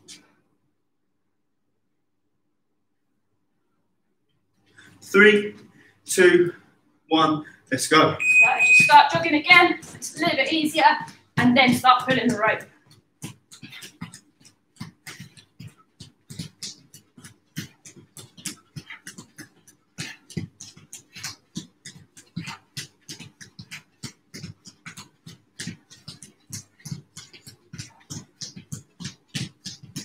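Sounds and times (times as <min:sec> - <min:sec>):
feet thumping on gym mats: 0:08.8 - 0:30.0.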